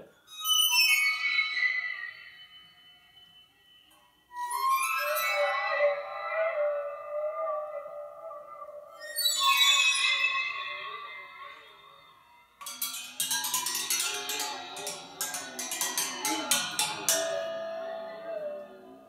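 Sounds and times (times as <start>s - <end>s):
bowed waterphone tones: 4.3s - 19.0s
rapid clatter of strokes on rods: 12.6s - 17.9s.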